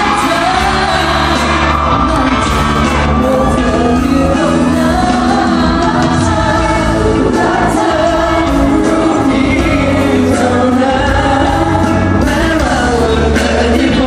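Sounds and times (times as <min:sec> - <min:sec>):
live pop music over pa: 0:00.0 - 0:14.0.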